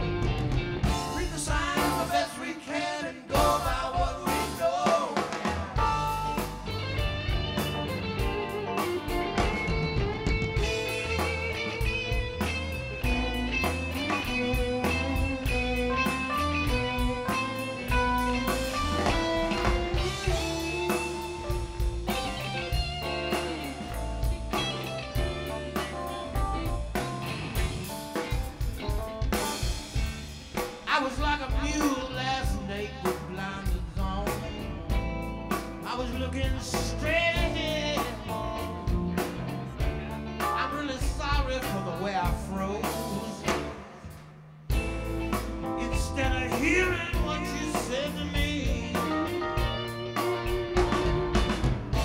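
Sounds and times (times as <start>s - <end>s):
bass: 0.0s - 52.0s
drum kit: 0.0s - 52.0s
electric guitar: 0.0s - 52.0s.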